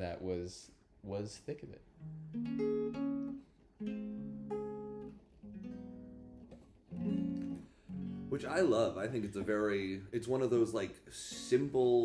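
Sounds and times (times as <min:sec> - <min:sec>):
jazzy guitar chords ringing: 0:01.9 - 0:09.8.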